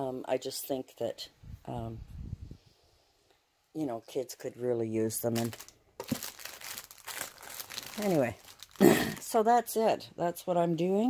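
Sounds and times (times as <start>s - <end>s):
plastic wrapping crinkling: 5.1s - 9.4s.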